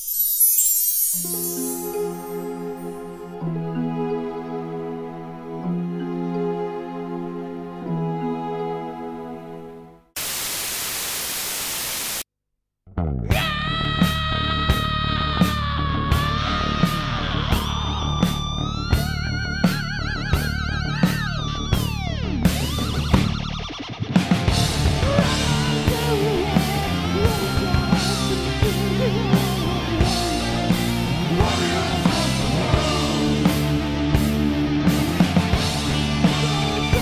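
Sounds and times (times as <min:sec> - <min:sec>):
heavy metal band playing: 0:13.4 - 0:37.0
wavering lead guitar line: 0:13.7 - 0:37.0
drums beating: 0:24.2 - 0:37.0.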